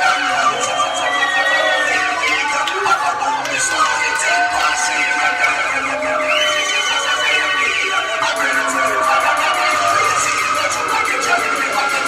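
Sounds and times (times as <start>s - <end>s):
drum and bass music: 0.0s - 12.0s.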